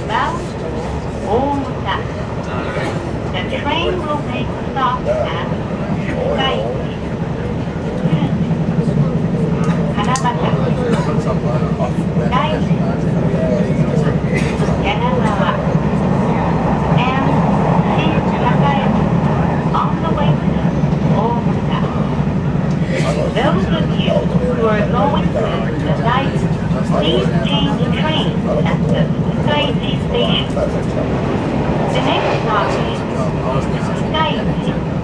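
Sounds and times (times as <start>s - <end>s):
indistinct voices talking: 0.0s - 35.0s
train running rumble: 0.0s - 35.0s.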